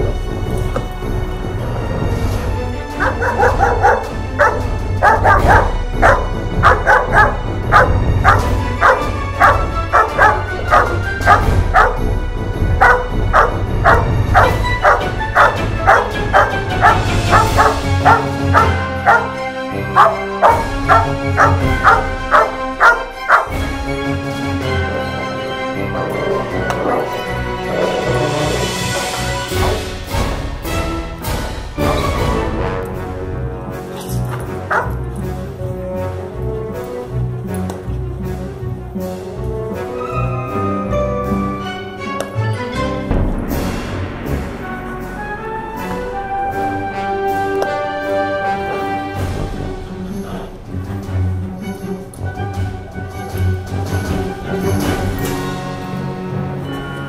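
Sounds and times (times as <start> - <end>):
background music: 0.0 - 57.0
dog barking: 2.9 - 12.0, 12.8 - 23.7, 28.9 - 29.8, 34.6 - 35.0.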